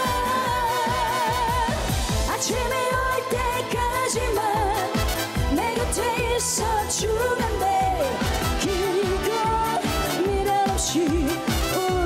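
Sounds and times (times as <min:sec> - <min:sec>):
band with dance beat: 0:00.0 - 0:12.0
woman singing with vibrato: 0:00.0 - 0:12.0.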